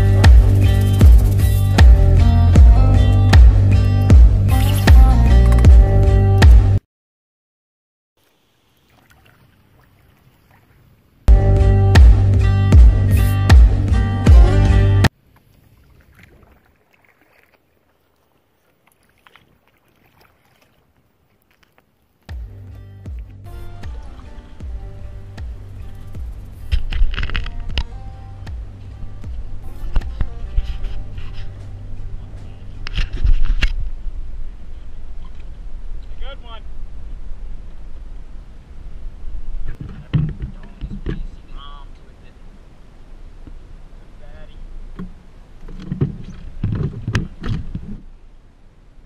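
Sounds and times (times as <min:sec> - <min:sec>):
canoe knocks and handling noises: 0:39.7 - 0:41.4, 0:44.9 - 0:48.1.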